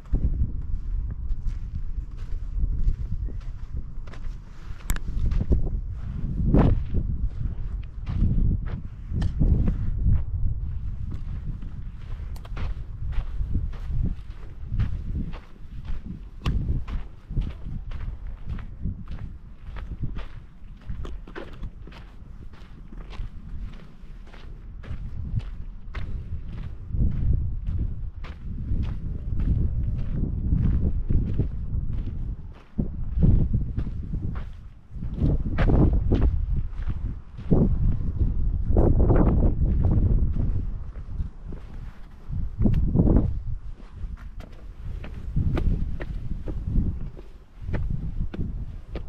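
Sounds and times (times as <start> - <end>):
footsteps on sandy ground: 0.0 - 49.0
low rumble: 0.0 - 49.0.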